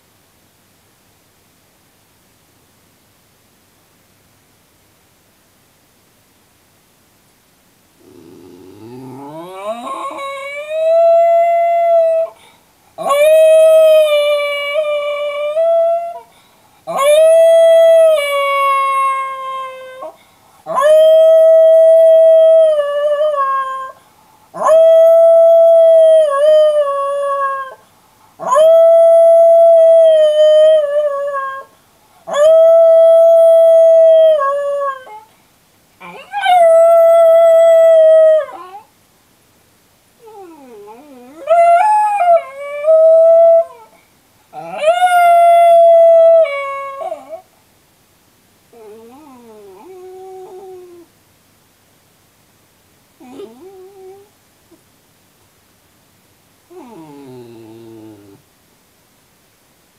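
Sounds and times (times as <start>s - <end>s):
dog howling: 8.0s - 12.4s, 13.0s - 16.2s, 36.0s - 38.9s, 40.2s - 43.9s, 44.6s - 47.4s, 48.8s - 51.1s, 53.2s - 54.3s, 56.7s - 58.4s.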